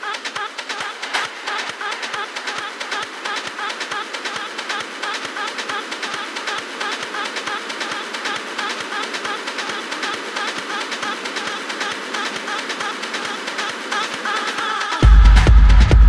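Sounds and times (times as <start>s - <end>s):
fast ticking percussion: 0.0s - 16.0s.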